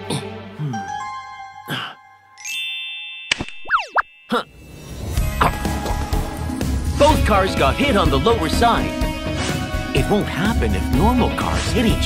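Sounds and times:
electronic chime-like tones: 0.8 - 5.6.

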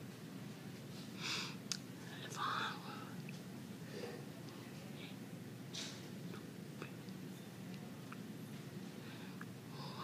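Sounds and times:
low steady hum: 0.0 - 10.0
person whispering breath sounds: 1.2 - 3.2.

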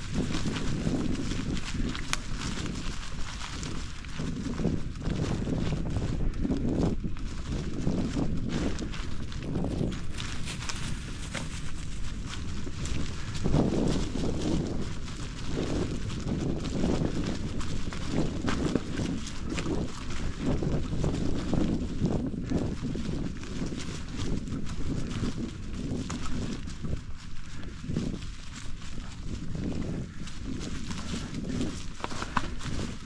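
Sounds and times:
bicycle tyres rolling over dry leaves: 0.0 - 33.0
wind buffeting microphone: 0.0 - 33.0.

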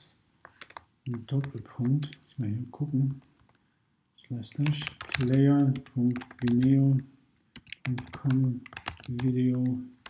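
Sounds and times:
computer keyboard typing: 0.4 - 2.3, 4.4 - 9.8.

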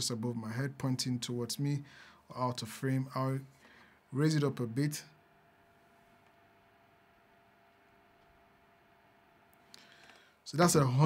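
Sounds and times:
faint fan whir: 0.0 - 11.0.

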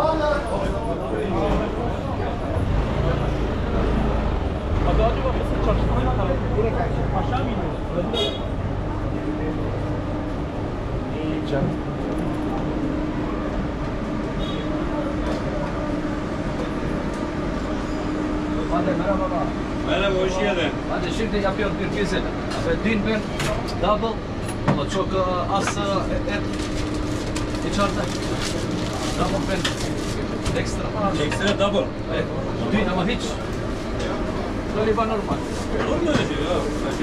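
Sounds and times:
many people talking: 0.0 - 37.0
heavy vehicle engine running: 0.5 - 37.0.

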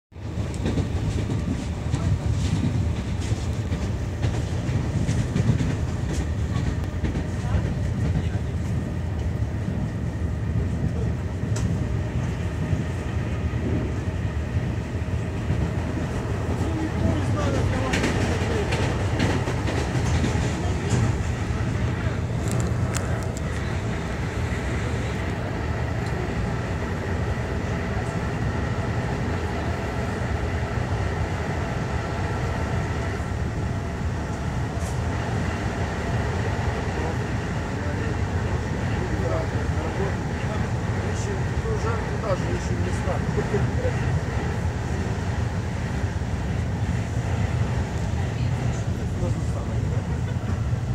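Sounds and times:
train carriage rumbling: 0.1 - 50.9
passengers murmuring: 0.2 - 50.9.

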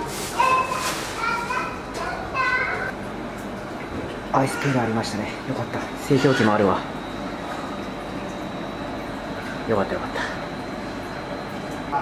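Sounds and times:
children calling out: 0.2 - 2.9, 4.4 - 5.0.

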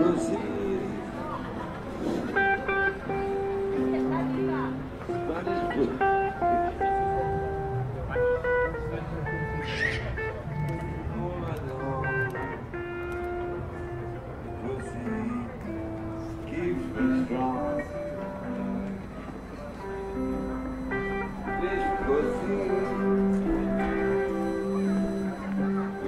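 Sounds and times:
guitar music: 0.0 - 26.0
people's voices: 0.0 - 26.0.

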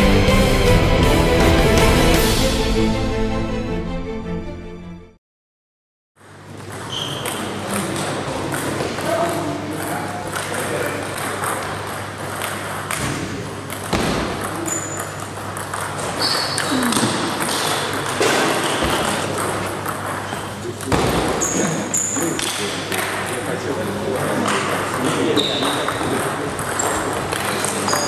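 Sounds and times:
sports hall hum: 6.2 - 28.0
table tennis balls clicking: 6.6 - 23.5, 24.1 - 28.0
table tennis ball clicking: 13.7 - 20.5.

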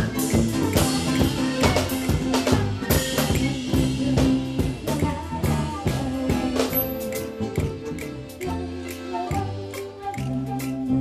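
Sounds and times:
accordion: 0.0 - 11.0
drum kit beat: 0.0 - 11.0
live folk band playing: 0.0 - 11.0.

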